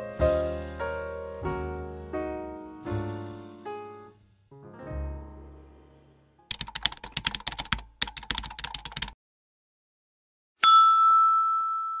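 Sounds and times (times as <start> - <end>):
keyboard typing clicks: 6.5 - 9.2
bell ding: 10.6 - 12.0.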